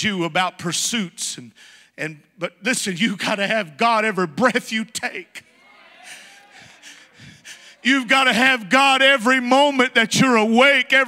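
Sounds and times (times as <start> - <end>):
man's sharp intake of breath: 1.5 - 2.0
man shouting preaching: 6.0 - 11.0.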